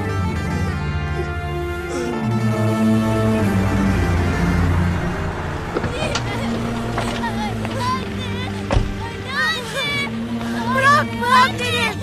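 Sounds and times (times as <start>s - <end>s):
van engine running: 0.4s - 12.0s
knocks and sharp thump: 8.6s - 9.0s.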